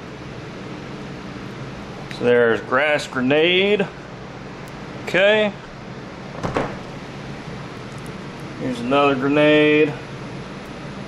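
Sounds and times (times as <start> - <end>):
box fan humming: 0.0 - 11.0.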